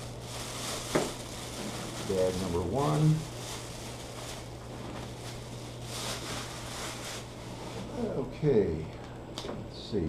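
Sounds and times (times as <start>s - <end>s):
plastic bag crinkling: 0.0s - 8.0s
steady low hum: 0.0s - 10.0s.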